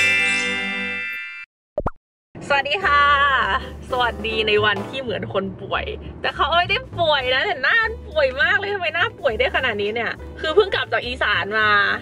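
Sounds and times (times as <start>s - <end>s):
double plop sound effect: 1.8s - 2.0s
background music: 2.4s - 12.0s
woman speaking: 2.4s - 12.0s.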